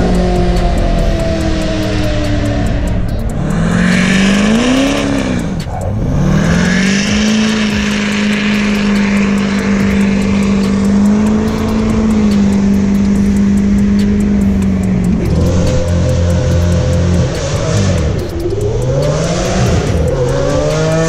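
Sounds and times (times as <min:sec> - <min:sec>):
car engine at high revs: 0:00.0 - 0:21.0
spinning tyres hissing: 0:00.0 - 0:21.0.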